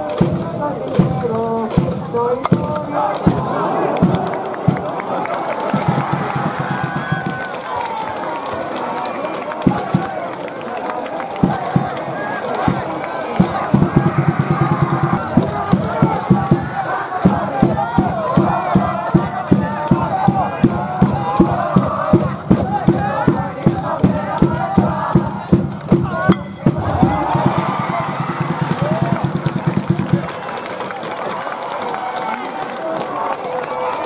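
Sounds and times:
fast steady beat: 0.0s - 7.5s, 11.4s - 30.3s
crowd chanting and shouting: 0.0s - 34.0s.

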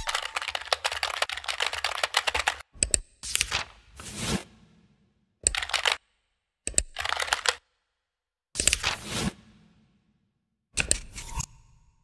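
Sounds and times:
computer keyboard typing: 0.0s - 2.7s, 5.5s - 6.0s, 6.8s - 7.6s.

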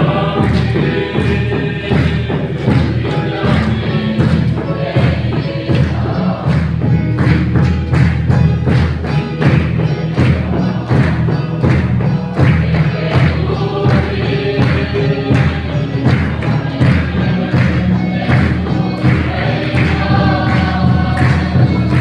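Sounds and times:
congregation singing a hymn: 0.0s - 22.0s
hand clapping: 0.0s - 22.0s
steady drum beat: 0.0s - 22.0s.

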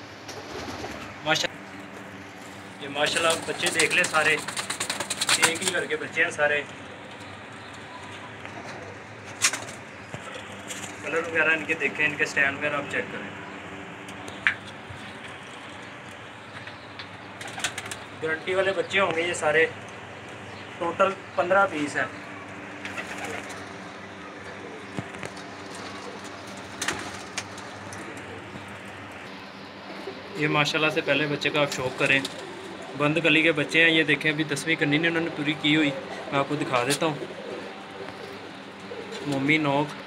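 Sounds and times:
pigeons cooing softly: 0.0s - 40.0s
steady background hum: 0.0s - 40.0s.

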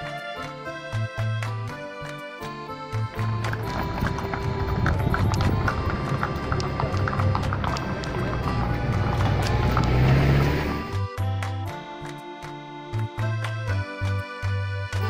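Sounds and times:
donkey hooves on paved street: 0.0s - 15.0s
music: 0.0s - 15.0s.

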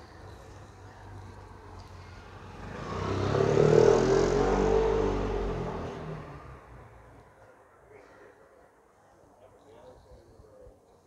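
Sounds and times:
vehicle passing by: 1.8s - 7.0s.

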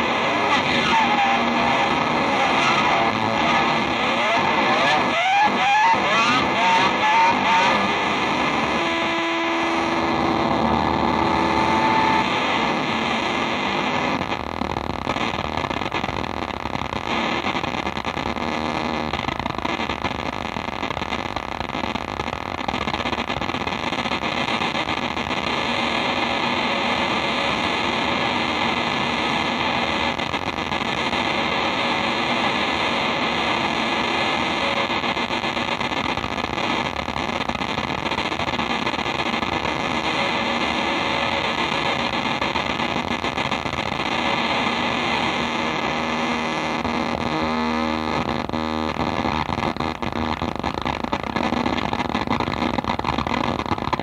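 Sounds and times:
held pitched tones: 0.0s - 13.4s
distorted electric guitar noise: 0.0s - 54.0s.

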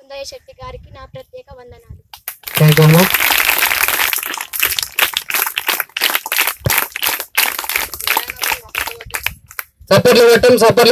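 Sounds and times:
group of people clapping: 2.2s - 9.7s.

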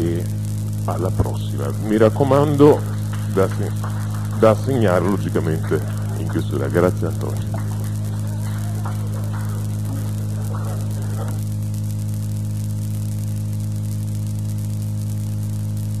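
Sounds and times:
electrical mains hum: 0.0s - 16.0s
recording hiss: 0.0s - 16.0s
faint voices: 0.9s - 11.6s.

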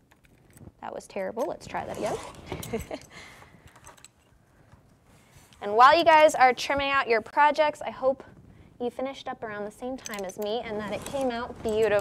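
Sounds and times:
fabric rustle: 10.5s - 12.0s.

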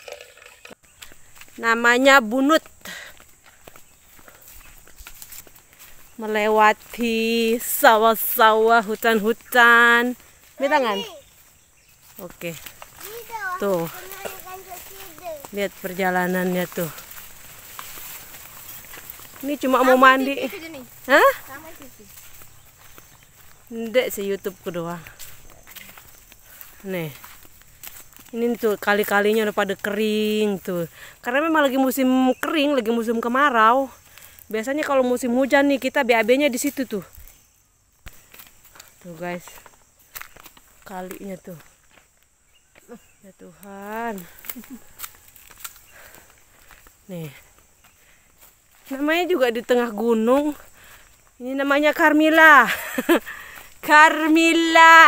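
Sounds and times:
dry leaves and twigs crunching: 0.0s - 55.0s
footsteps on dirt path: 0.0s - 55.0s
steady high outdoor hiss: 0.0s - 55.0s
soft ticks and scuffs: 2.6s - 31.2s, 33.9s - 35.3s, 36.2s - 51.4s.

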